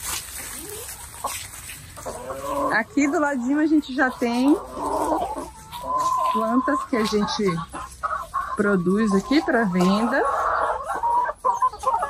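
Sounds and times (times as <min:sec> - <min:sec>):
hens clucking: 0:00.0 - 0:12.0.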